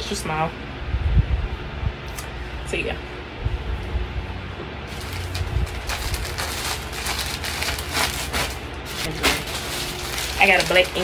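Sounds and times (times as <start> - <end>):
plastic bags rustling and crinkling: 4.9 - 11.0.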